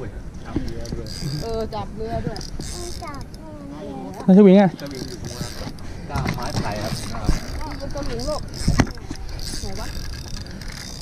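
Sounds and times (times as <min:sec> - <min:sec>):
fishing reel clicking and creaking: 0:00.4 - 0:11.0.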